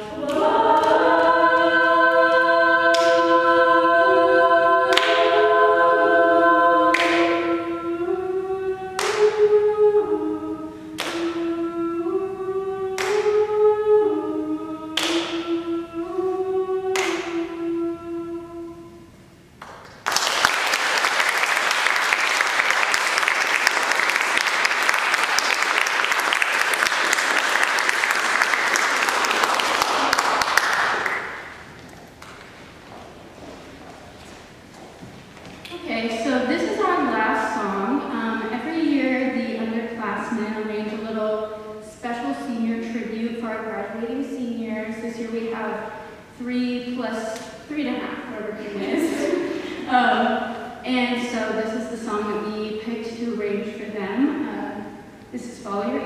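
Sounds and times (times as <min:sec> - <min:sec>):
women's a cappella group singing: 0:00.0 - 0:19.1, 0:35.8 - 0:56.0
audience applauding: 0:19.6 - 0:32.6.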